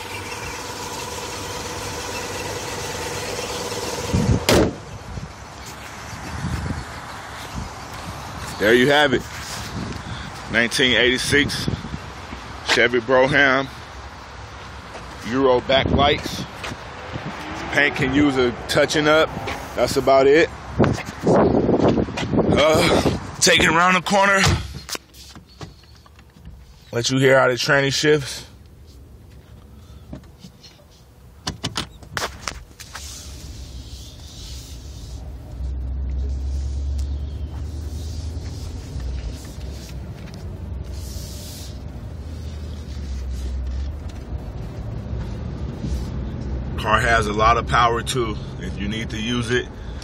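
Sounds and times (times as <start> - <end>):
car engine idling: 0.0 - 6.1
car hood shutting thump: 4.4 - 4.9
car engine rumbling inside cabin: 33.2 - 47.4.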